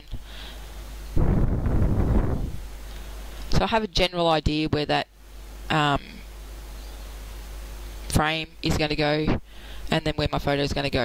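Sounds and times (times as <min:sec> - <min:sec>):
air rush on microphone: 0:00.1 - 0:03.7.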